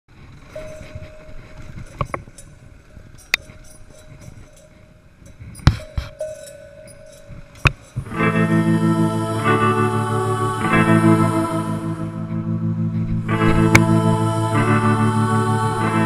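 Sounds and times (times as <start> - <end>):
bike knocking and rattling: 0.1 - 8.2
dirt bike engine: 0.1 - 16.0
faint steady whine: 0.1 - 16.0.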